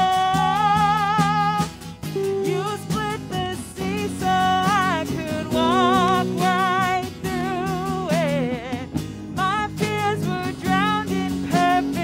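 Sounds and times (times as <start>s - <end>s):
live worship band playing: 0.0s - 12.0s.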